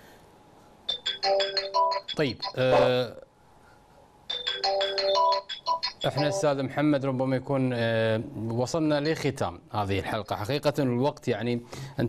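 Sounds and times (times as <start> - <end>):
electronic chime melody: 0.9 - 3.0, 4.3 - 6.6
man speaking: 2.2 - 3.3, 6.0 - 11.6.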